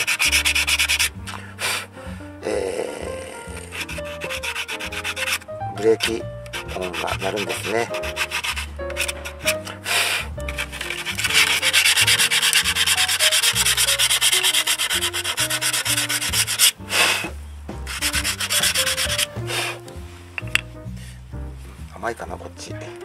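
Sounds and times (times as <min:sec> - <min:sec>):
sandpaper rubbing on brake pad: 0:00.0 - 0:01.8, 0:03.6 - 0:17.3, 0:17.9 - 0:19.8.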